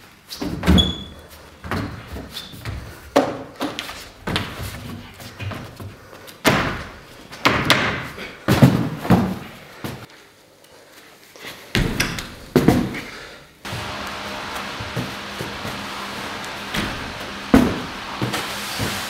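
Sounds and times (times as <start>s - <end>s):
hands and feet thumping floor: 1.6s - 10.1s, 11.7s - 13.9s, 14.5s - 19.0s.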